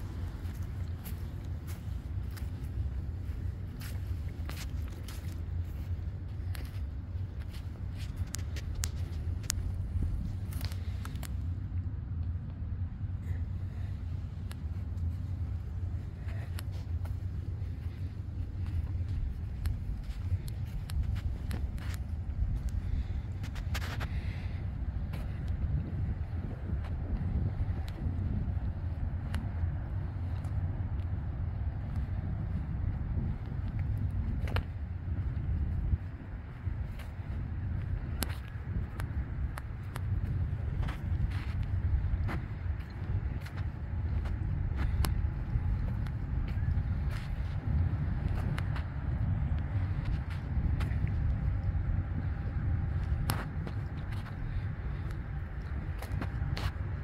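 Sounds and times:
low outdoor rumble: 0:00.0 - 0:57.0.

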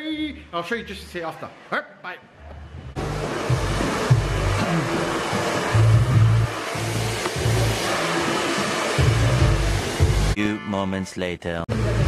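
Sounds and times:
music with pulsing bass beat: 0:03.0 - 0:08.0, 0:09.0 - 0:10.4
steady rushing hiss: 0:03.0 - 0:10.4.

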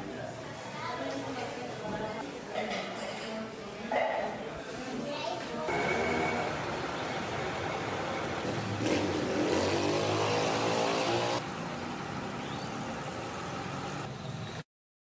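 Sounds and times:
steady traffic noise: 0:05.7 - 0:14.6
vehicle engine running close by: 0:05.7 - 0:14.6.

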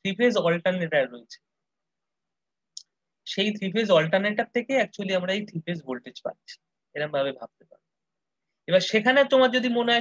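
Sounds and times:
person speaking: 0:00.0 - 0:01.6, 0:02.7 - 0:10.0.

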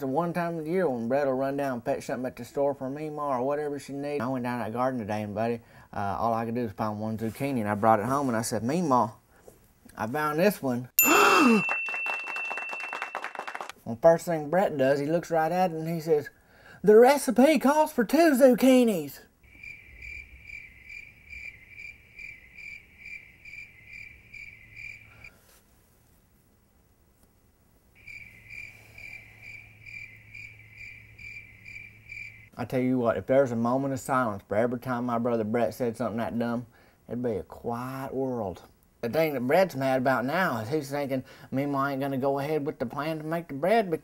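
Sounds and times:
voiced sigh or groan: 0:11.0 - 0:11.6
thin steady high tone: 0:11.0 - 0:13.6
cricket chirping: 0:19.4 - 0:25.4, 0:28.0 - 0:32.6.

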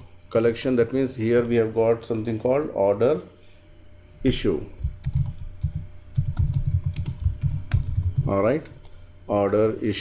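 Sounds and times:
keyboard typing: 0:04.8 - 0:09.0.

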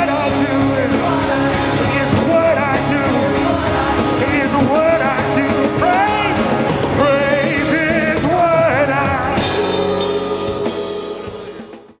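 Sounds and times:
band holding a chord: 0:00.0 - 0:12.0
drum and cymbal hits: 0:00.0 - 0:12.0.

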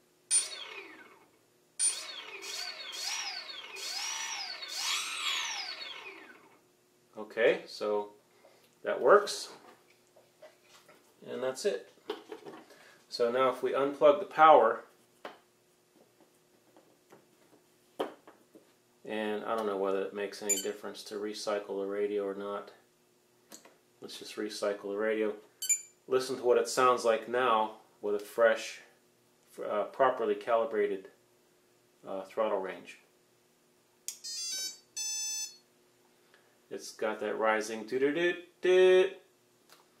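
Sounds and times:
rising beeps: 0:34.3 - 0:35.6.

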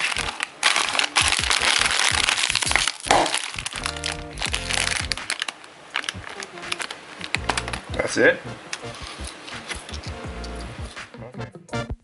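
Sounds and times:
chips shaken out: 0:00.0 - 0:07.8
chip bag crinkling: 0:00.0 - 0:07.9, 0:08.8 - 0:10.0.

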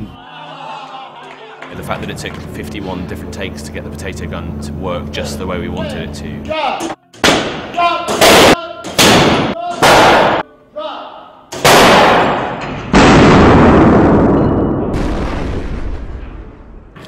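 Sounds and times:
potato gun blasts: 0:11.5 - 0:13.5.

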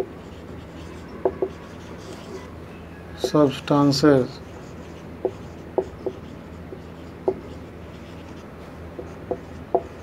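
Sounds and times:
marker writing on whiteboard: 0:00.0 - 0:02.6, 0:03.2 - 0:10.0
steady low hum: 0:00.0 - 0:10.0.

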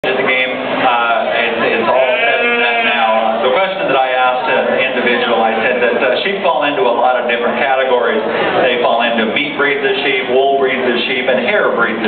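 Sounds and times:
sheep bleating: 0:01.9 - 0:03.4.

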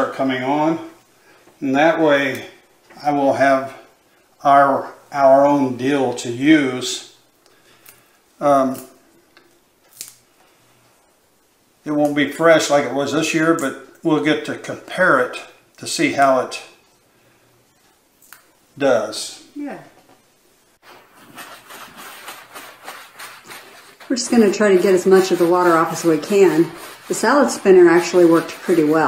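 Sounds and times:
dill stems snapping: 0:09.8 - 0:10.2
paper towel patting and rustling: 0:20.8 - 0:29.0.

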